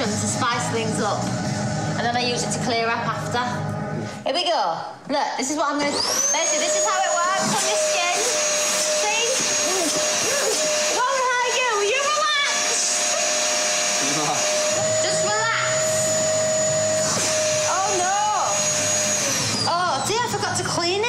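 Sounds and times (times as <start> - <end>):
vacuum cleaner running: 0.0 - 4.2, 5.6 - 21.0.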